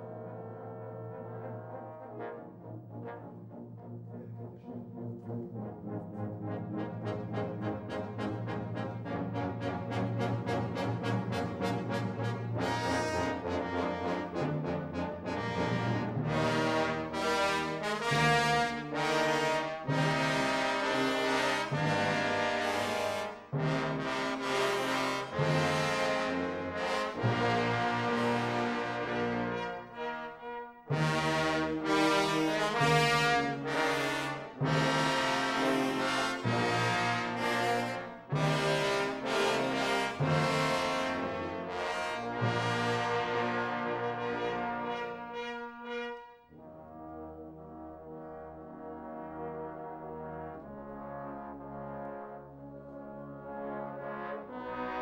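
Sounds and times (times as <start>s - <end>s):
trombone choir and tuba chords: 0.0s - 55.0s.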